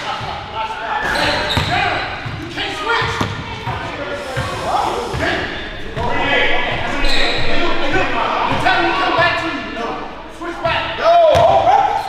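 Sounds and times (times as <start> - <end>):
players calling out: 0.1 - 12.0.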